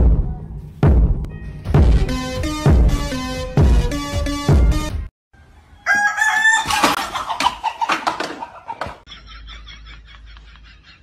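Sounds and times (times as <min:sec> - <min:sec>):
rooster crowing: 0:05.4 - 0:07.0.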